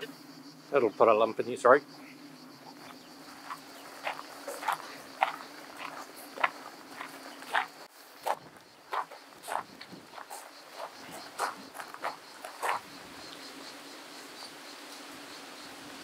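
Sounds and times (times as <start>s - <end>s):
high-pitched insect buzz: 0.0s - 16.0s
footsteps crunching on gravel: 2.7s - 13.0s.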